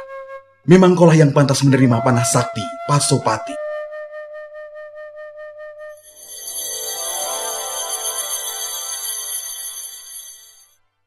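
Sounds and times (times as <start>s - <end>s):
shimmering bell-like magic sound: 6.0s - 10.8s.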